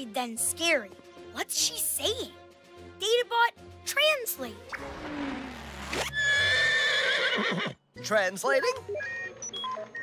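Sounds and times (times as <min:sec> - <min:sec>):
horse whinnying: 0:05.1 - 0:07.8.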